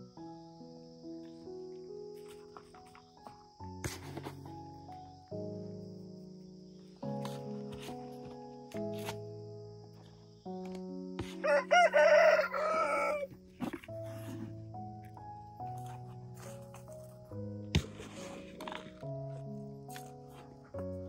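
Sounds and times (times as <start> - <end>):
rooster crowing: 11.2 - 13.4.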